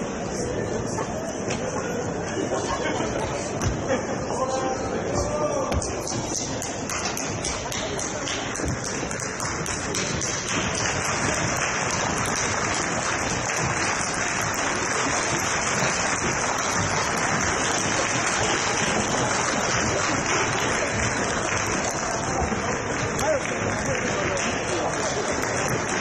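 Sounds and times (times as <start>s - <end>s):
crowd murmur: 0.0s - 26.0s.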